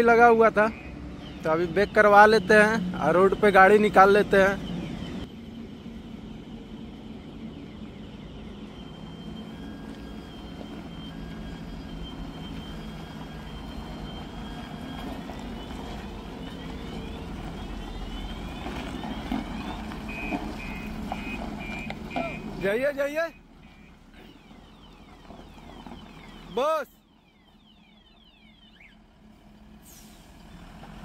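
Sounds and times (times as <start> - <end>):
diesel truck engine running: 0.0 - 31.0
reverse warning beeps: 0.3 - 5.4, 6.4 - 29.2.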